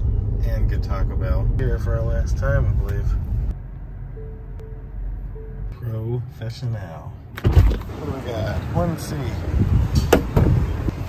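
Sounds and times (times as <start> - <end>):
low cabin rumble: 0.0 - 11.0
parking sensor beeps: 4.1 - 5.9.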